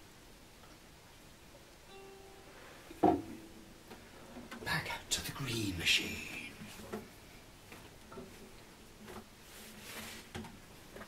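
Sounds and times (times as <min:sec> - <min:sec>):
acoustic guitar strings ringing: 0:01.9 - 0:04.3
knock on guitar: 0:03.0 - 0:03.5.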